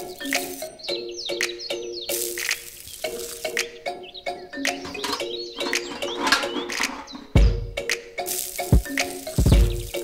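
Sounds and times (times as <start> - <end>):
background music with steady beat: 0.0 - 10.0
wire bucket handles clicking: 4.7 - 7.4.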